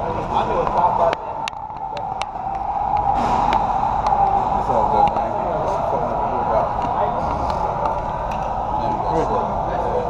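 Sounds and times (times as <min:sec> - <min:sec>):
steady high hum: 0:00.0 - 0:10.0.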